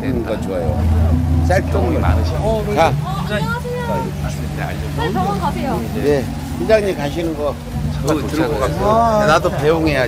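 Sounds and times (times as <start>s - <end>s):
people talking indistinctly: 0.0s - 10.0s
steady low hum: 0.0s - 10.0s.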